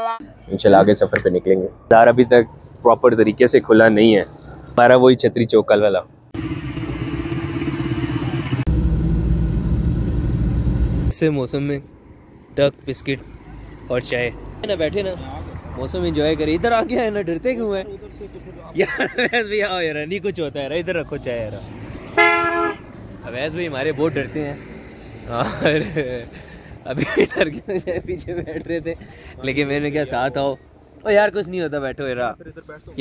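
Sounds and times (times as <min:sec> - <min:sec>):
vehicle horn honk: 0:00.0 - 0:00.2, 0:22.2 - 0:22.9
vehicle engine running: 0:06.4 - 0:11.1.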